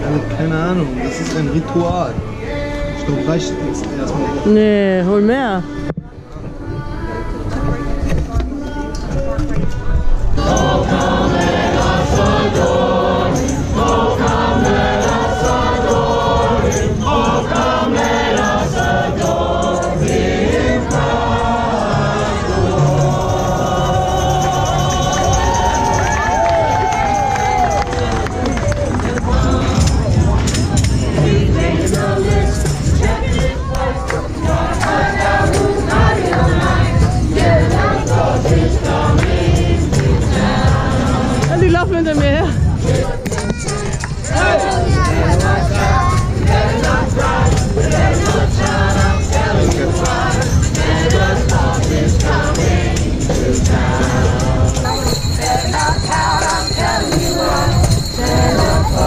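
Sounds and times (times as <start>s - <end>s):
choir singing: 0.0s - 5.9s, 9.8s - 59.0s
music: 0.0s - 59.0s.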